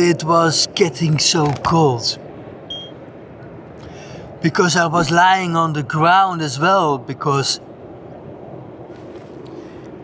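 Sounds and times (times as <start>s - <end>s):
faint constant hum: 0.0s - 10.0s
low outdoor rumble: 0.0s - 10.0s.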